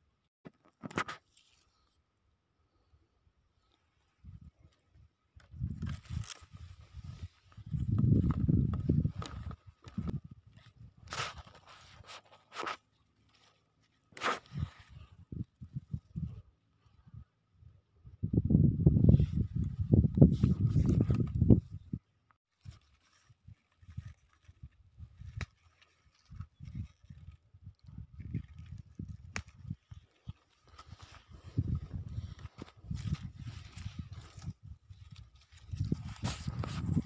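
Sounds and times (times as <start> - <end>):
microphone handling rumble: 7.0 - 10.4, 31.4 - 37.0
footsteps on dry soil: 30.8 - 37.0.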